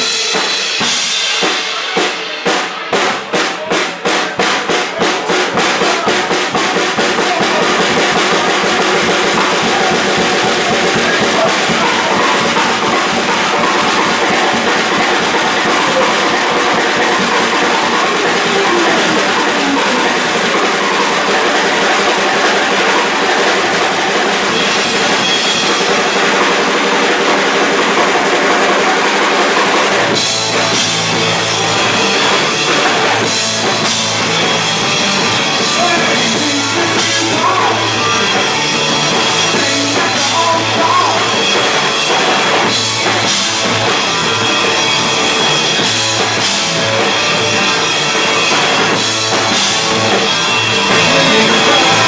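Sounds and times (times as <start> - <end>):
drum kit beat: 0.0 - 52.0
bass guitar: 4.4 - 52.0
electric guitar: 5.3 - 52.0.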